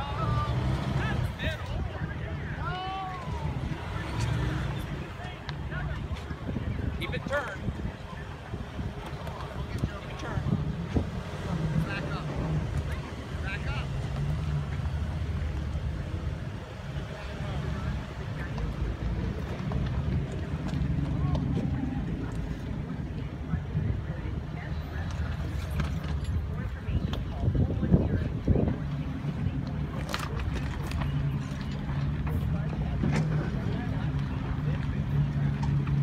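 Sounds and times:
car engine rumbling at low speed: 0:00.0 - 0:36.0
voices in background: 0:00.0 - 0:36.0
wind on microphone: 0:01.2 - 0:13.2, 0:18.9 - 0:31.4.

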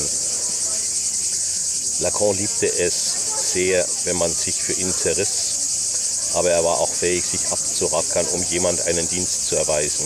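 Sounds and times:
cicadas droning: 0:00.0 - 0:10.0.

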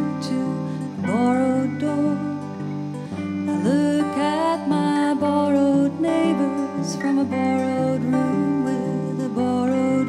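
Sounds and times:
acoustic guitar: 0:00.0 - 0:10.0
woman singing slow song: 0:00.0 - 0:10.0.

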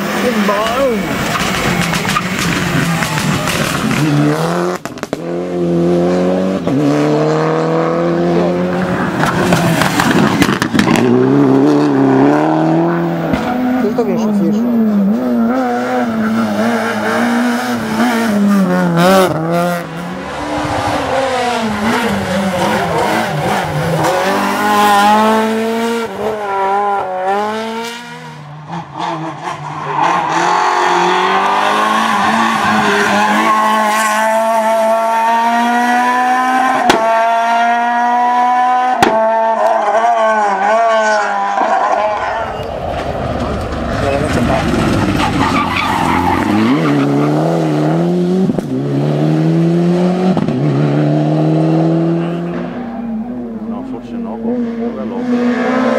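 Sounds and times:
rally car engines revving: 0:00.0 - 0:55.9.

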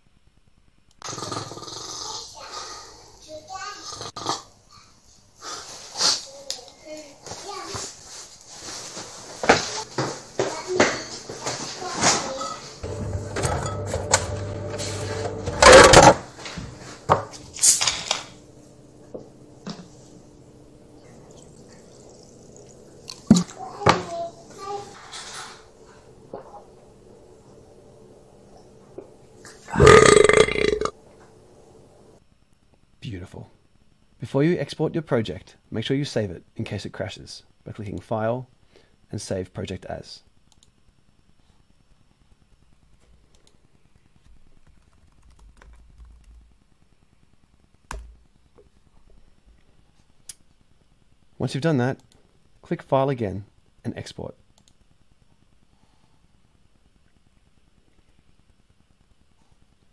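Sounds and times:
loud burp: 0:01.0 - 0:02.1, 0:29.7 - 0:31.0
faint steady hum: 0:11.4 - 0:59.9.

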